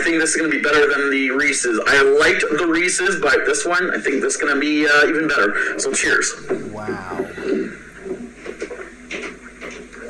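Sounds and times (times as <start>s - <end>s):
man gulping a drink: 6.4s - 7.8s
soft swallowing: 6.4s - 8.0s.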